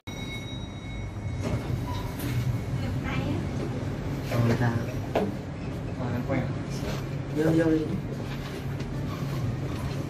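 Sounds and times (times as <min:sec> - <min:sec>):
elevator car rumbling: 0:00.1 - 0:10.0.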